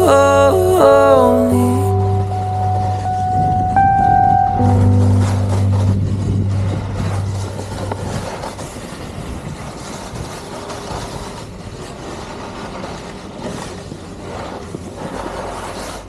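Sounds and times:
background music chord ringing: 0:00.0 - 0:08.6
board sliding over snow: 0:00.0 - 0:16.0.

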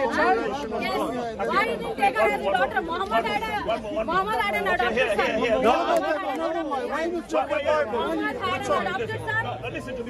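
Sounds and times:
people talking over one another: 0:00.0 - 0:10.0.

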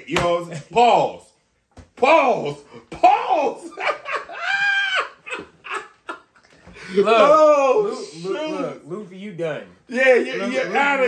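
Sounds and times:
man speaking: 0:02.0 - 0:03.9, 0:06.8 - 0:11.0
men laughing: 0:02.6 - 0:08.6.

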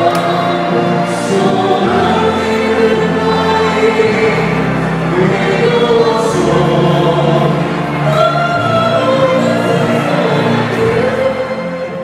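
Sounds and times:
instrumental accompaniment: 0:00.0 - 0:12.0
singers performing a ballad: 0:00.0 - 0:12.0.

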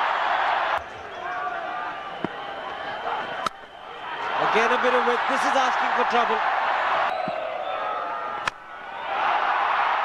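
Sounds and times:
stadium crowd cheering: 0:00.0 - 0:10.0.

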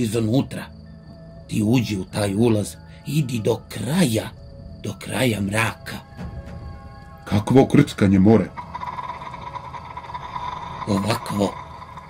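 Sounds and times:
ambient drone with held tone: 0:00.0 - 0:12.0.

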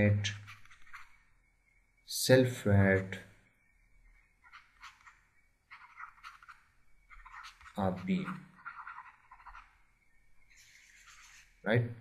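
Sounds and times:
stylus scratching on tablet: 0:00.0 - 0:01.2, 0:04.4 - 0:09.8, 0:10.5 - 0:11.7.

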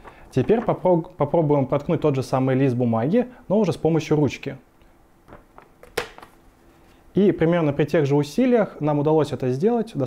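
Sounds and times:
paper crackling: 0:00.0 - 0:01.1
pen popping through paper: 0:05.7 - 0:06.3.

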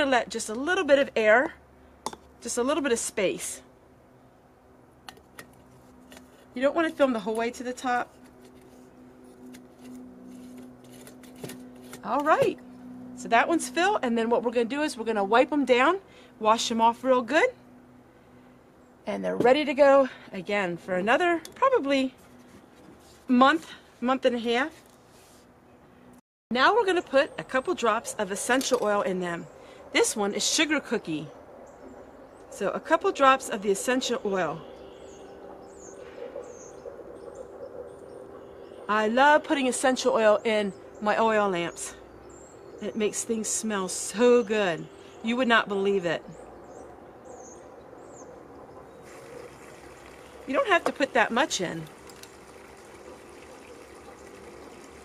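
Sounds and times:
steady low hum: 0:00.0 - 0:55.0.

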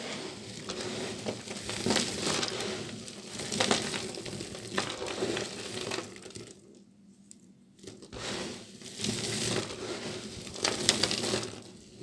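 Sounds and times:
dry soap crunching and crackling: 0:00.2 - 0:12.0.

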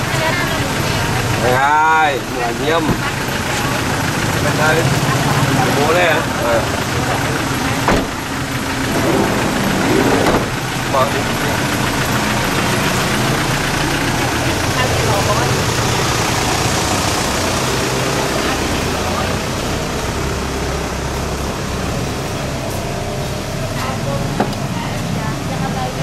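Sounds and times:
engine idling: 0:00.0 - 0:26.0.

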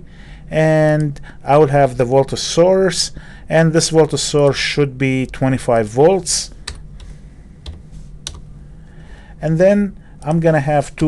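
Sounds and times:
faint low hum: 0:00.0 - 0:11.0
keyboard keystrokes: 0:06.7 - 0:08.4.

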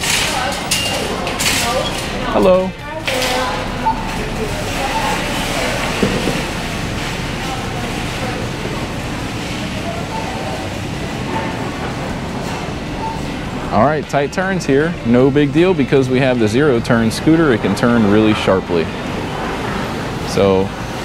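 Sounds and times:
indistinct voices: 0:00.0 - 0:21.0.

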